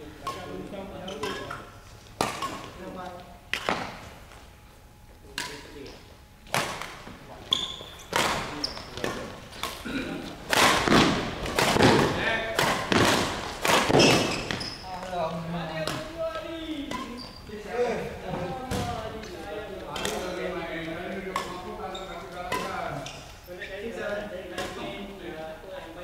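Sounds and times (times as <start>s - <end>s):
rackets hitting shuttlecock: 0.2s - 2.9s, 3.5s - 4.1s, 5.3s - 5.8s, 6.5s - 7.2s, 8.1s - 14.8s, 15.8s - 16.2s, 16.8s - 17.3s, 19.9s - 20.4s, 21.1s - 23.3s, 24.5s - 24.8s
shoe squeaks: 1.0s - 2.7s, 7.3s - 9.3s, 13.9s - 15.1s, 16.9s - 17.8s, 21.8s - 23.4s
feet landing on court floor: 12.7s - 14.7s.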